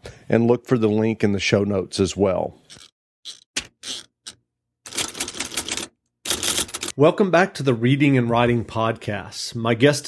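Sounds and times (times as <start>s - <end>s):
typewriter keystrokes: 4.9s - 6.9s.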